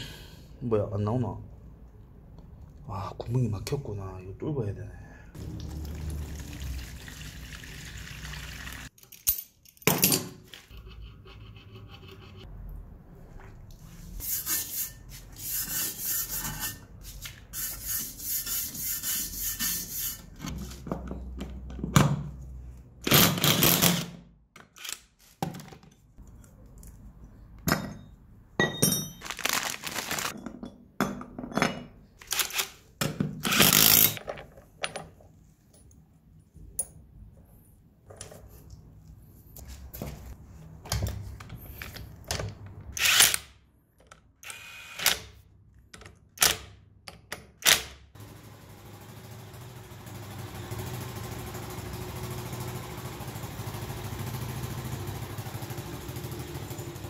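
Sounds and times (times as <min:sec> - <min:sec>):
cordless impact wrench: 0:33.4 - 0:34.2, 0:43.0 - 0:43.5.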